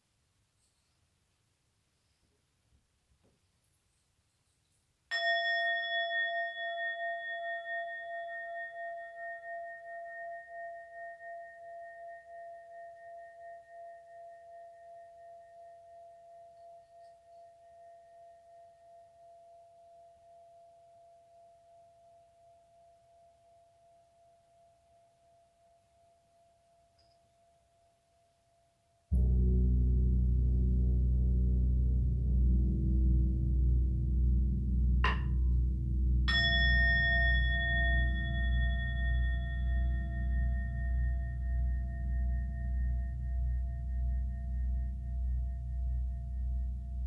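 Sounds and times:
singing bowl ringing: 0:05.1 - 0:24.0, 0:36.3 - 0:46.4.

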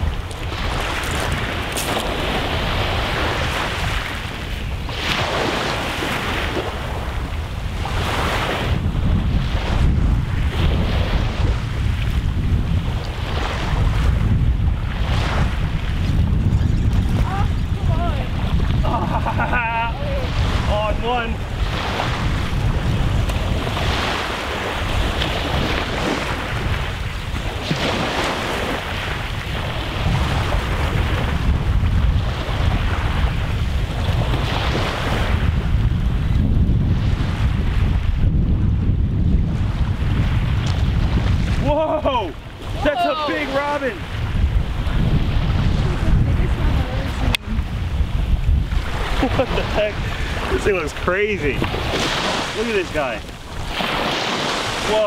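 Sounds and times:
waves washing on rocks: 0:00.0 - 0:36.4, 0:39.8 - 0:55.0
wind buffeting microphone: 0:00.0 - 0:55.0.

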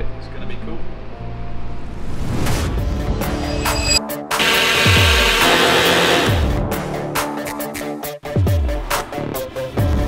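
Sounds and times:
background music: 0:00.0 - 0:10.0
jigsaw cutting wood: 0:04.4 - 0:06.6.

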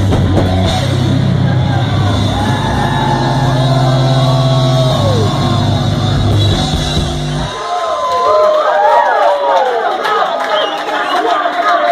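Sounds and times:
rock band holding chord: 0:00.0 - 0:07.8
audience whooping: 0:00.3 - 0:11.6.

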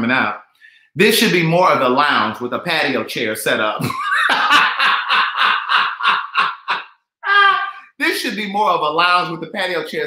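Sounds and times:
man laughing hard: 0:03.8 - 0:07.9.

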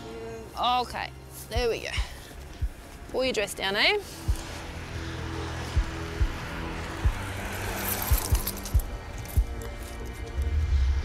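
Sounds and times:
music of low held notes: 0:00.0 - 0:11.0.

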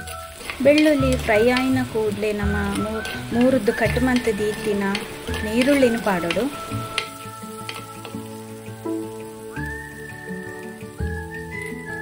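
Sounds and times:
background music of sustained notes: 0:00.0 - 0:12.0
garlic sizzling in oil: 0:00.0 - 0:12.0.

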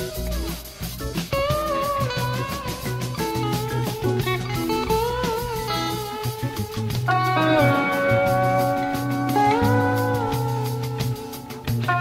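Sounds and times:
bass and drums: 0:00.0 - 0:12.0
electric guitar lead with bent notes: 0:00.0 - 0:12.0.

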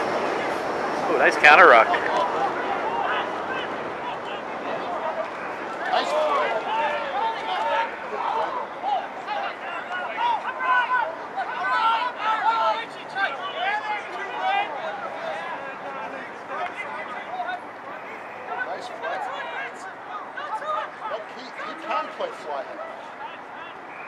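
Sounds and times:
players and spectators shouting: 0:00.0 - 0:24.0.

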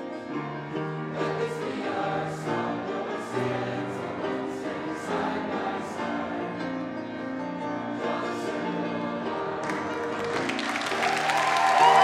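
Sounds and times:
congregation singing a hymn: 0:00.0 - 0:10.8.

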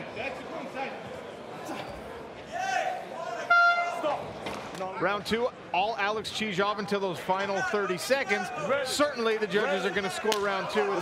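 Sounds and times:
crowd noise and shouting: 0:00.0 - 0:11.0
loud horn tone: 0:03.5 - 0:04.0.

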